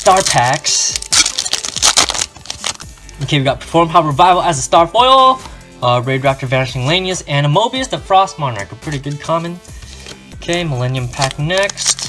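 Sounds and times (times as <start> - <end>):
wrapper torn open and crinkled: 0.0 - 2.9, 11.2 - 12.0.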